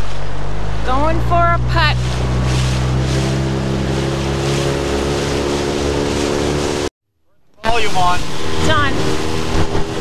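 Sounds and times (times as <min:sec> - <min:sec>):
outboard motor running: 0:00.0 - 0:06.9, 0:07.6 - 0:10.0
water rushing past hull: 0:00.0 - 0:06.9, 0:07.6 - 0:10.0.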